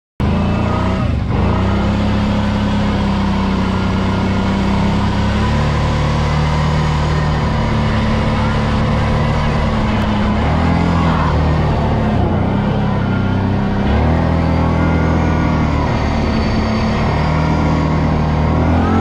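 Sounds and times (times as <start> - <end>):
atv engine running: 0.2 - 19.0.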